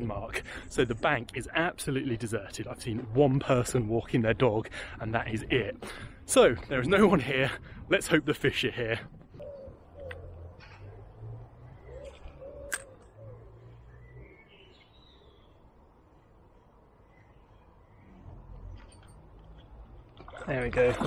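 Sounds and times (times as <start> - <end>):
bird cooing: 9.3 - 15.4.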